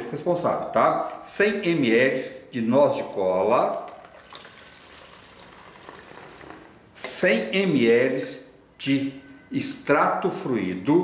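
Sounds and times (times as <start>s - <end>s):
liquid trickling through funnel: 3.3s - 6.8s.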